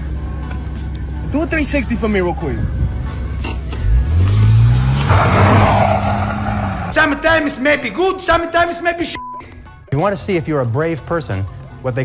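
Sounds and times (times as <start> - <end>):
car engine revving hard: 3.8 - 7.0.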